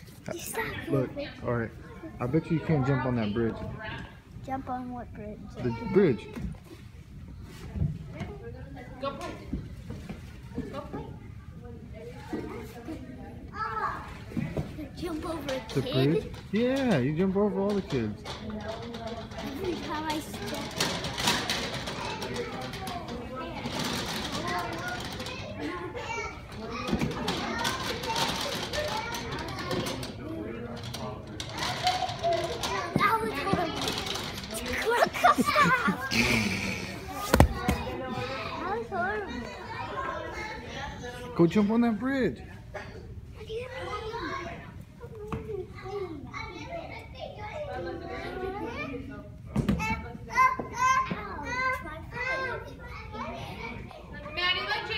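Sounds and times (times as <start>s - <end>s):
children playing and chattering: 0.0s - 54.9s.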